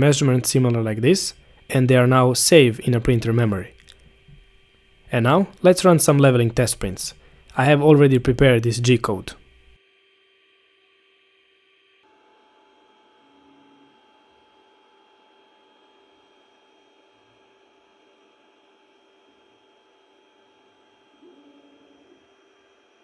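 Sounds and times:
printer hum and whine: 0:00.0 - 0:09.8, 0:12.0 - 0:23.0.

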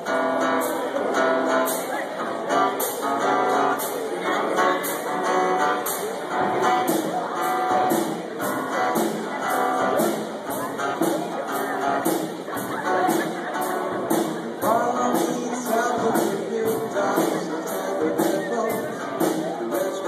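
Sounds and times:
live band playing: 0:00.0 - 0:20.0.

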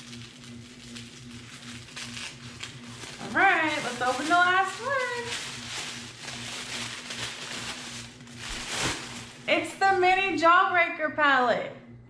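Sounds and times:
tissue paper rustling and crinkling: 0:00.0 - 0:09.7.

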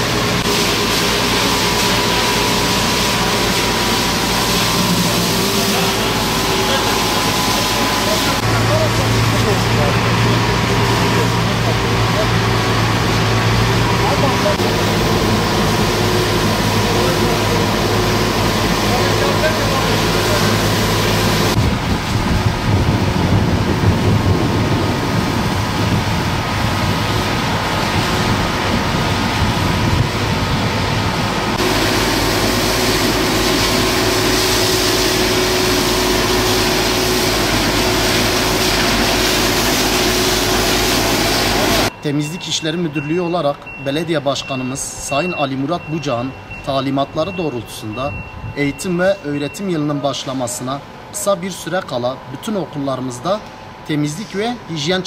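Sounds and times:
water spraying onto pavement: 0:00.0 - 0:41.9
truck engine running: 0:00.0 - 0:42.1.

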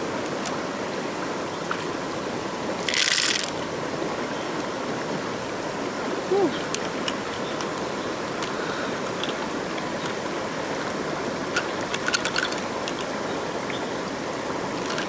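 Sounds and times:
flowing river water: 0:00.0 - 0:15.0.

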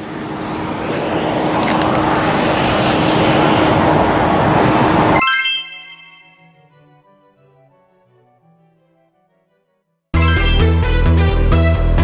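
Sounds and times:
vehicle passing: 0:00.0 - 0:05.2
road traffic rushing: 0:00.0 - 0:06.8.

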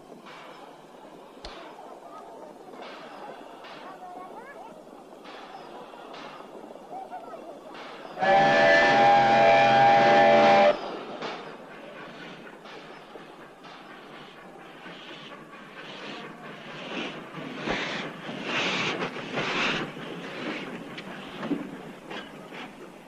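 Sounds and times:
station bustle: 0:00.0 - 0:23.0
train whistle blast: 0:08.2 - 0:10.9.

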